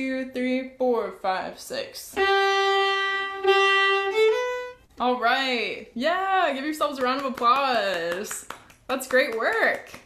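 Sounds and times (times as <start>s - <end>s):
solo fiddle playing: 2.1s - 4.9s.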